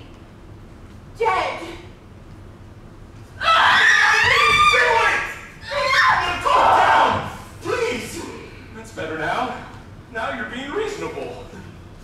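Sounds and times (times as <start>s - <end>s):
woman screaming: 3.4s - 7.1s.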